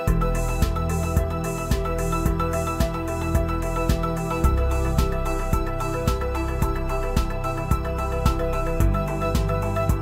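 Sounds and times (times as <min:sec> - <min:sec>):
bass: 0:00.0 - 0:10.0
deep kick drum: 0:00.1 - 0:10.0.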